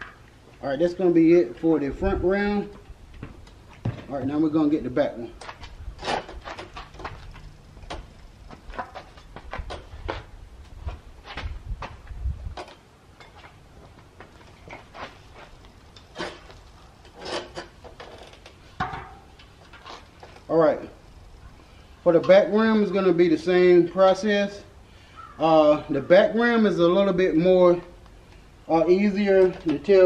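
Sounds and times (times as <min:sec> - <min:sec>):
bicycle wheel handled: 0:05.3 - 0:21.4.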